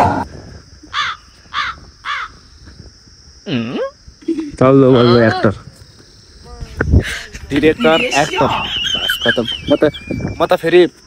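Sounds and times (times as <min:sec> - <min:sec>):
bird calling: 0:07.3 - 0:10.6.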